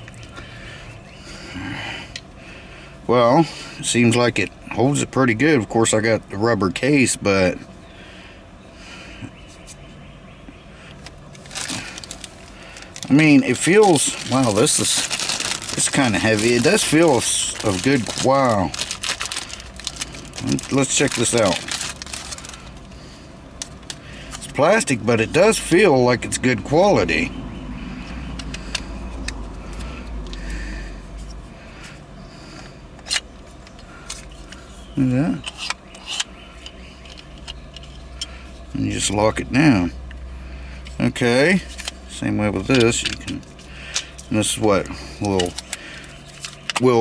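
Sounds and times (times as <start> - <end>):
plastic parts being handled: 10.9 - 23.0, 33.0 - 38.7, 42.6 - 47.0
plastic bag rustling: 11.3 - 23.1.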